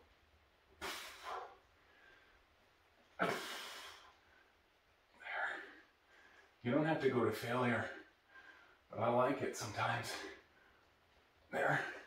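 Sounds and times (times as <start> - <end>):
man breathing hard: 0.8 - 2.5, 8.0 - 8.9
man speaking breathily: 5.2 - 10.7.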